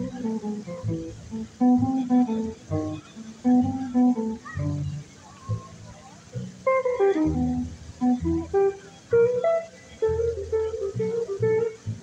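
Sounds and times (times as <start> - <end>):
electric jazz guitar: 0.0 - 12.0
plucked double bass: 0.0 - 12.0.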